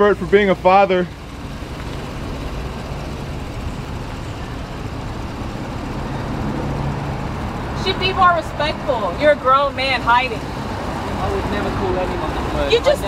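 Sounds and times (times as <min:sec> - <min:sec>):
street traffic: 0:00.0 - 0:13.0
vehicle engine humming: 0:00.0 - 0:13.0.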